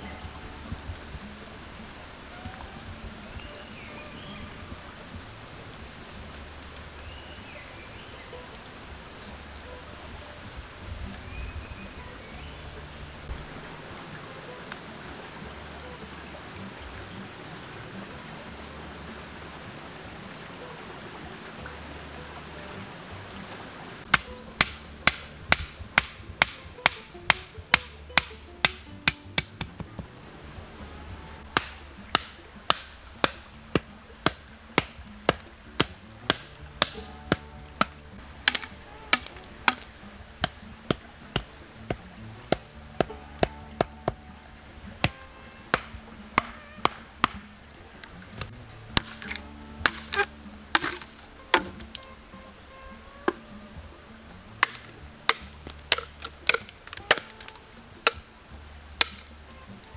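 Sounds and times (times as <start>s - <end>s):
soft background music: 0.0s - 59.9s
rapid chopping strikes: 24.1s - 30.0s, 31.5s - 44.0s, 45.0s - 47.5s, 48.9s - 51.8s, 54.6s - 58.3s, 59.0s - 59.3s.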